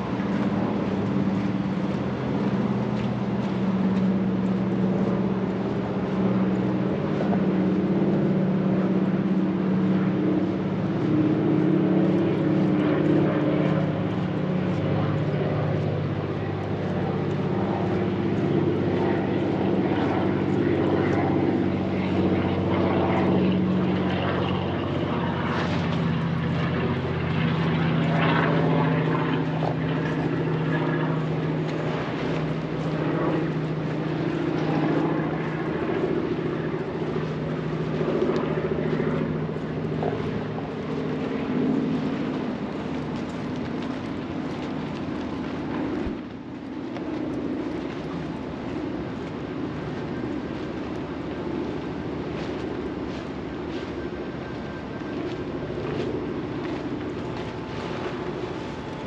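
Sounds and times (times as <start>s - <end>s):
low engine drone: 0.0s - 59.0s.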